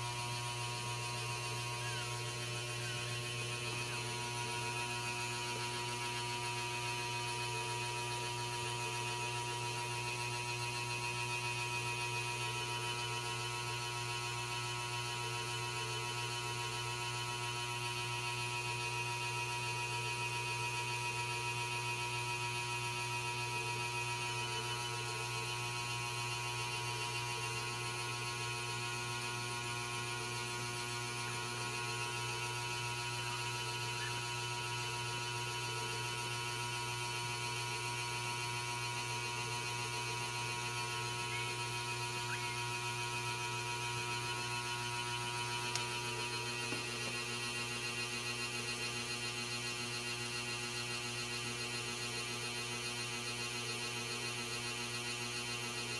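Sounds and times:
steady electrical hum: 0:00.0 - 0:55.9.

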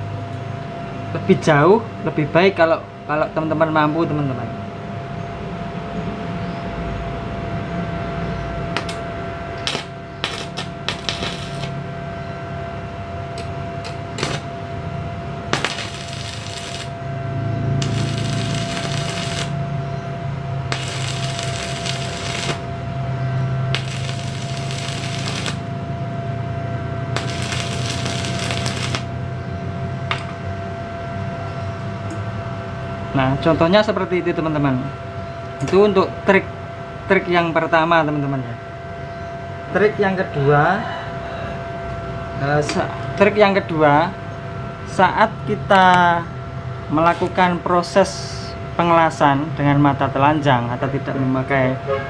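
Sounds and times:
welding machine hum: 0:08.7 - 0:12.0, 0:12.8 - 0:29.3
sharp clicks: 0:08.8 - 0:09.0
welding arc crackle: 0:08.8 - 0:09.0, 0:09.6 - 0:11.8, 0:13.8 - 0:14.5, 0:15.5 - 0:17.0, 0:17.7 - 0:19.6, 0:20.6 - 0:22.9, 0:23.7 - 0:25.8, 0:27.1 - 0:29.2.

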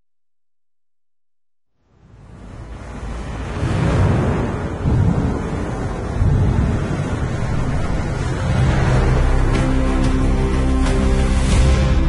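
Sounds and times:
loud rushing noise: 0:02.2 - 0:12.0.

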